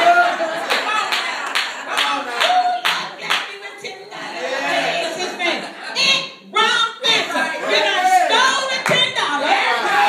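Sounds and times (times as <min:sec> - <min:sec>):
hand clapping: 0:00.7 - 0:03.5.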